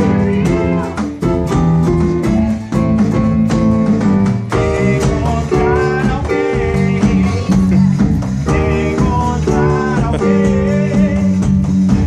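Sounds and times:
band playing upbeat disco: 0.0 - 12.0.

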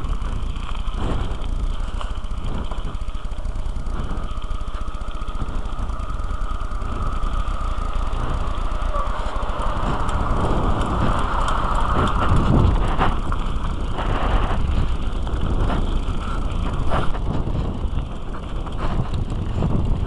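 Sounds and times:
bike tyres rolling over gravel: 0.0 - 20.0
small ticks: 0.0 - 20.0
wind buffeting microphone: 0.0 - 20.0.

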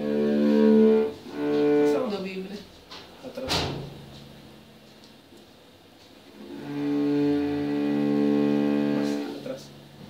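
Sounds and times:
bowed cello note: 0.0 - 2.4, 6.4 - 9.6.

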